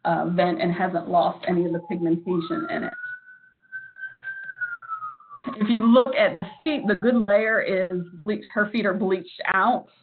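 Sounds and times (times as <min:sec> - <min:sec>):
thin whistling tone: 0:01.5 - 0:05.6.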